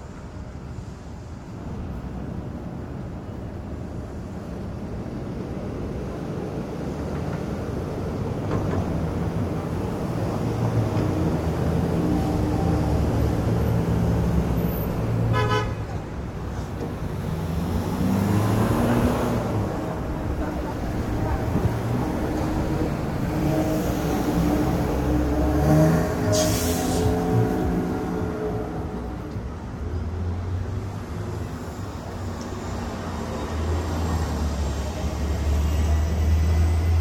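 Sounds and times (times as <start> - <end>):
vehicles passing: 1.5 - 37.0
car horn toot: 15.3 - 15.8.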